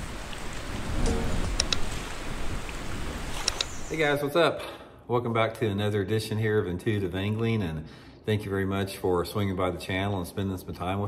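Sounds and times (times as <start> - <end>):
rushing water: 0.0 - 4.4
sharp clicks: 1.5 - 1.9, 3.4 - 3.8.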